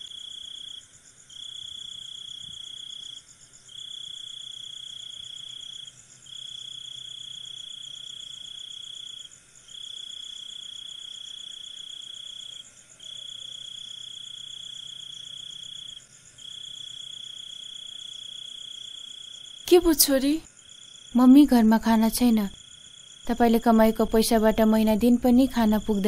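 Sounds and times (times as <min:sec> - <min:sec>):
cricket trilling: 0:00.0 - 0:26.0.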